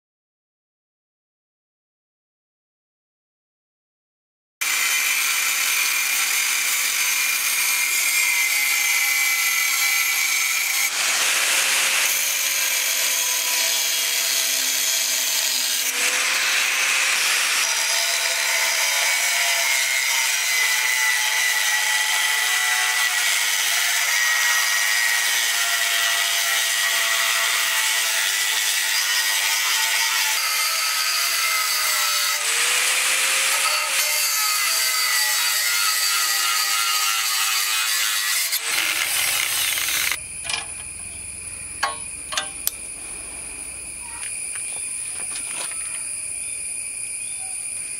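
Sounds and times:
angle grinder cutting metal: 4.6 - 46.1.

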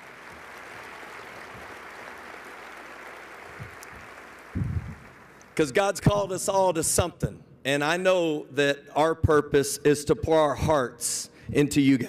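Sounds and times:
audience applause: 0.0 - 5.5.

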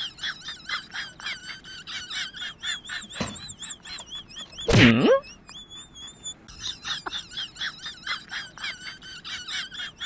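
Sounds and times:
high-pitched squeaking chirps: 0.0 - 10.0.

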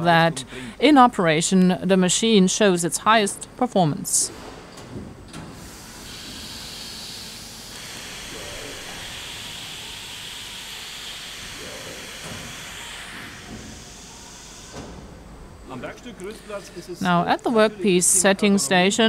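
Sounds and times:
machine hissing: 5.5 - 16.8.

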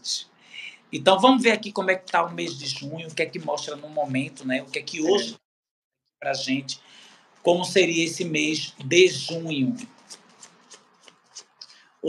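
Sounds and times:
cards being shuffled: 9.8 - 11.6.

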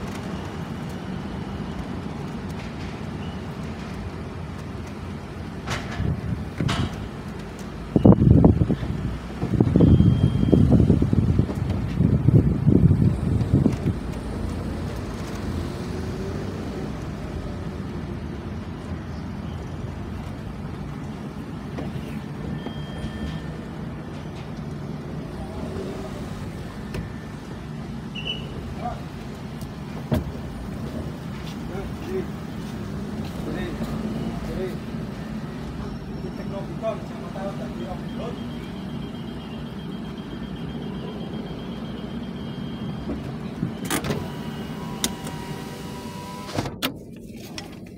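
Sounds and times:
wind gusts on microphone: 7.8 - 16.8.

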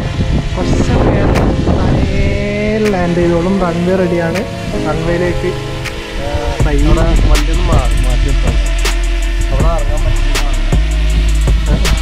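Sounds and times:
drone propellers whining: 0.0 - 12.0
wind buffeting microphone: 0.0 - 12.0.

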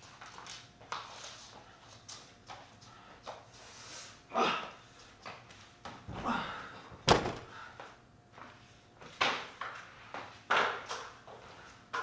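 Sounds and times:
footsteps and shuffling on floor: 0.0 - 4.2, 4.8 - 6.1, 7.8 - 12.0.

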